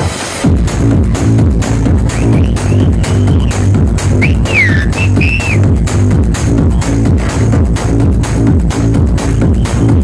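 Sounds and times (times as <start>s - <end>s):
loud techno with bass-heavy beat: 0.0s - 10.0s
high whistle-like notes: 2.1s - 5.6s.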